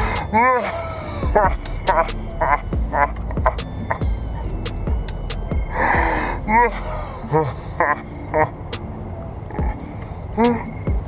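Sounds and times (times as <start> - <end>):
low outdoor rumble: 0.0 - 11.0
woman laughing: 0.3 - 4.1, 6.5 - 8.6.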